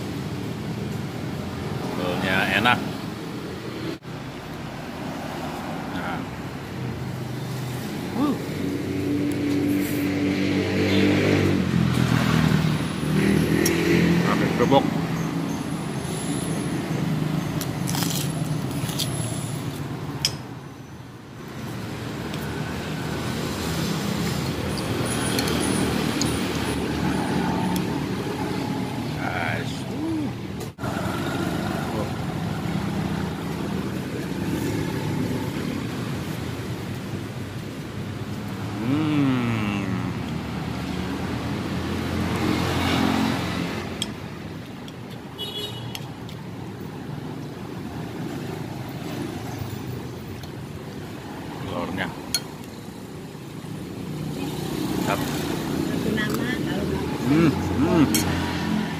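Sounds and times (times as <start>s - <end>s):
passing road traffic: 0.0s - 58.9s.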